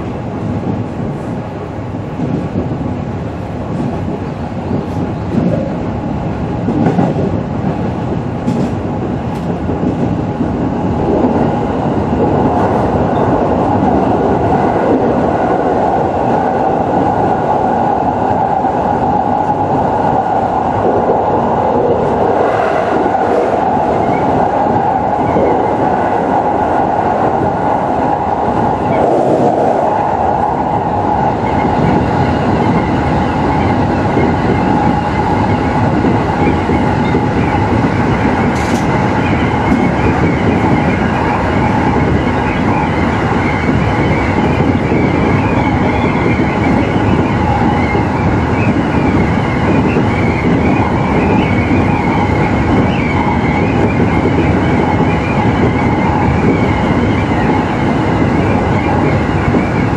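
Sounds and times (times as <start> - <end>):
train motor hum: 0.0 - 59.9
train wheels rumbling on rail: 0.0 - 59.9.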